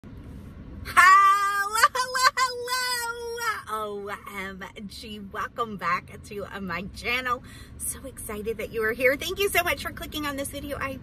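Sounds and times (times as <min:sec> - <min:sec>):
low hum in car cabin: 0:00.0 - 0:11.0
woman singing: 0:00.9 - 0:04.0.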